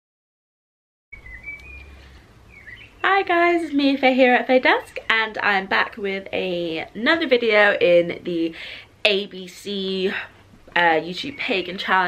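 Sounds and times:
bird chirps: 1.2 - 3.2
low background hum: 1.2 - 12.0.

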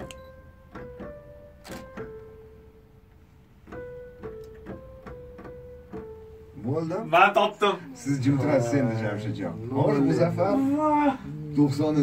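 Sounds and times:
electronic keyboard melody: 0.0 - 10.6.

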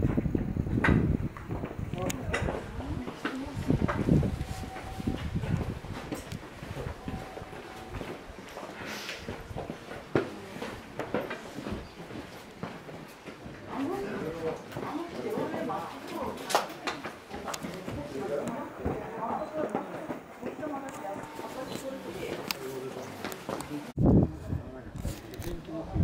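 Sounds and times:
people talking in background: 1.8 - 5.8, 6.9 - 26.0.

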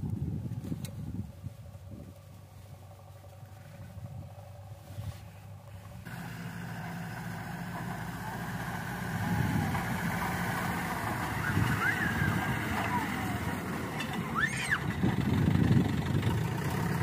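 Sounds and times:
truck engine running: 0.0 - 17.0.

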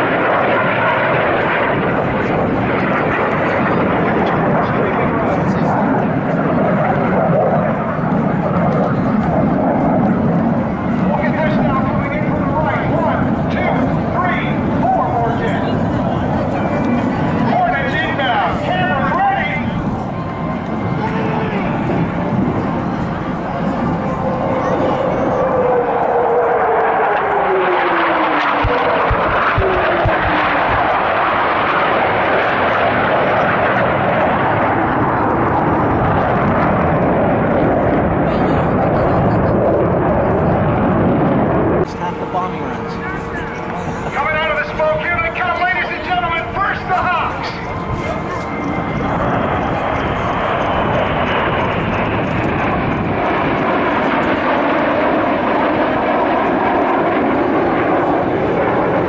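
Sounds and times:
falling jet whine: 0.0 - 59.0
jet engines roaring: 0.0 - 59.0.

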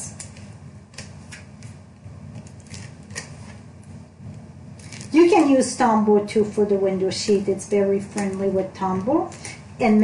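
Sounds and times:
soft paper rustle: 4.8 - 5.5.

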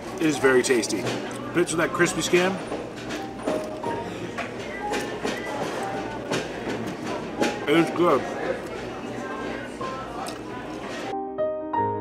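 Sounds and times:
dishes and cutlery clinking: 0.0 - 11.1
murmur of voices: 0.0 - 11.1.

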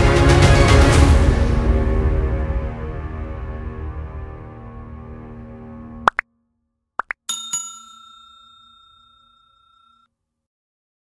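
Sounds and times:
background music: 0.0 - 6.2
bell-like chime: 7.3 - 10.1.

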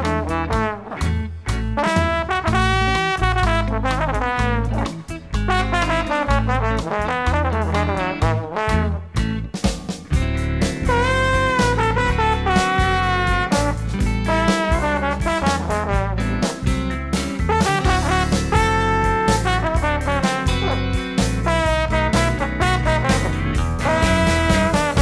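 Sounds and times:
brass lines: 0.0 - 9.2, 10.8 - 16.6, 17.4 - 25.0
rhythm section with guitar: 0.0 - 25.0.

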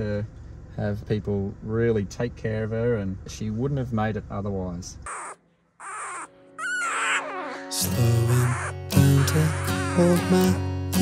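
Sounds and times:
puppy squeaky cries: 5.1 - 10.3
guitar-backed music: 7.6 - 11.0.

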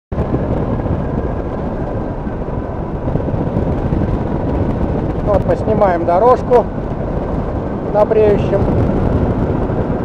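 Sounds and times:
engine and propeller running: 0.1 - 10.0
rushing airflow noise: 0.1 - 10.0.

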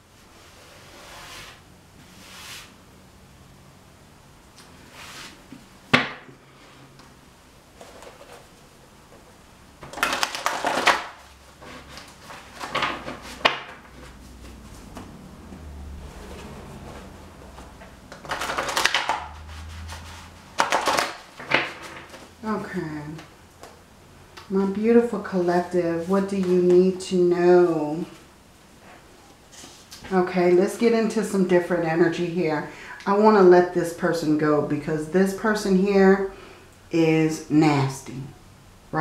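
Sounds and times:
cards shuffled by hand: 18.1 - 22.2.

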